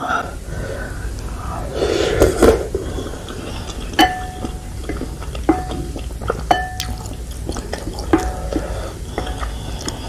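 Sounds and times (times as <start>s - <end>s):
broth sloshing: 0.3s - 10.0s
utensils knocking on ringing bowl: 4.0s - 4.5s, 6.5s - 6.9s.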